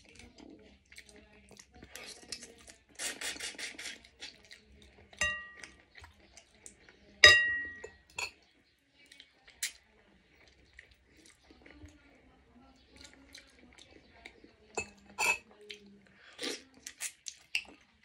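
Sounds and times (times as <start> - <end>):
cutlery clinking ceramic bowl: 5.2 - 5.8, 7.2 - 8.4, 14.8 - 15.4.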